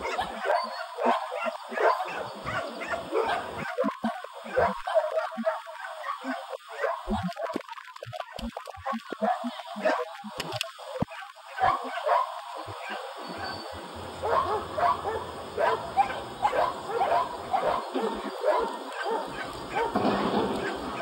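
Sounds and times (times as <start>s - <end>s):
dog barking: 0.0s - 7.7s, 8.3s - 10.1s, 11.0s - 13.5s, 14.2s - 21.0s.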